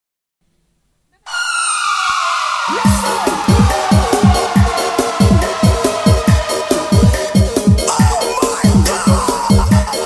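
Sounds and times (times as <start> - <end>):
synthesizer tone sliding down: 2.7 - 7.9.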